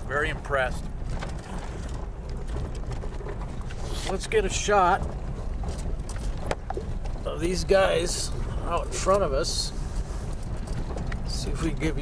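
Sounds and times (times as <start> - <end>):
low engine and road rumble: 0.0 - 12.0
rattles and knocks from bumps: 0.0 - 12.0.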